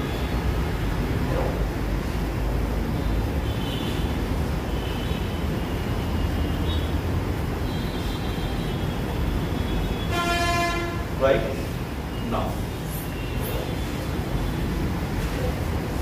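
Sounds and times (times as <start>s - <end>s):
horn sounding: 9.8s - 11.2s.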